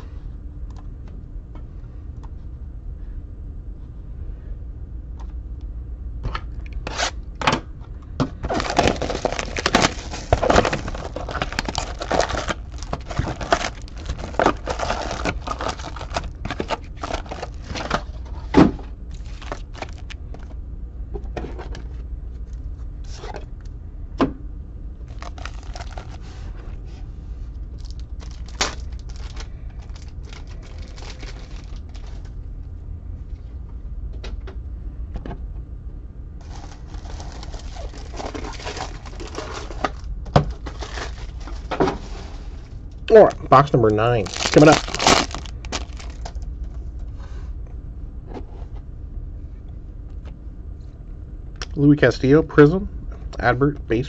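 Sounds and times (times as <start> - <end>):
low steady hum: 0.0 - 54.0
foil packs rustling and crinkling: 8.4 - 20.5, 25.1 - 26.6, 27.7 - 32.3, 36.4 - 42.4, 43.2 - 46.4.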